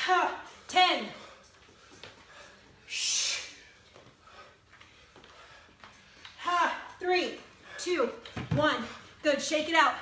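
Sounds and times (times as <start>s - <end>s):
faint breathing: 0.5s - 6.4s.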